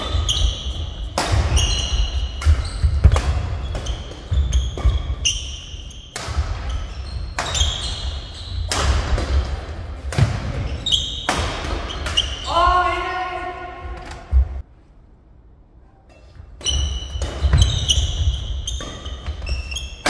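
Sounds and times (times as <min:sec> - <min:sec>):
shoes squeaking on court floor: 0:00.0 - 0:09.5, 0:10.4 - 0:12.7, 0:16.1 - 0:20.0
rackets hitting shuttlecock: 0:00.0 - 0:12.4, 0:16.6 - 0:20.0
player calling out: 0:12.4 - 0:14.0.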